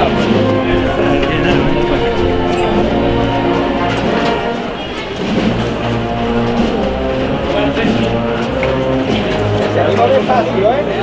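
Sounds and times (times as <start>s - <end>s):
wind band playing a march: 0.0s - 11.0s.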